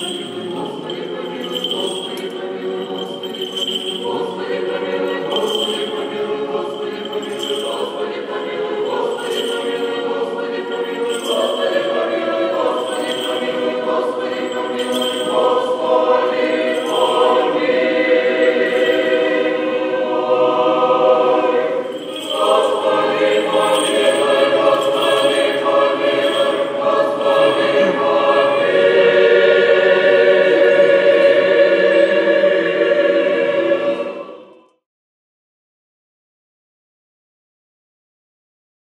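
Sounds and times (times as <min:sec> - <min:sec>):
choir singing unaccompanied: 0:00.0 - 0:34.8.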